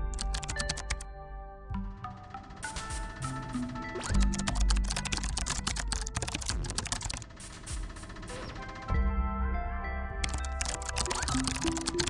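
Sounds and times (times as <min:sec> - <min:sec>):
keyboard typing clicks: 0:00.0 - 0:01.0, 0:03.8 - 0:07.3, 0:10.2 - 0:12.0
background music: 0:00.0 - 0:12.0.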